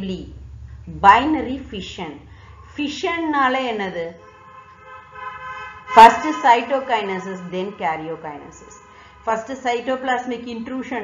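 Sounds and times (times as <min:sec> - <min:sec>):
steady pitched tone: 0:00.0 - 0:04.9.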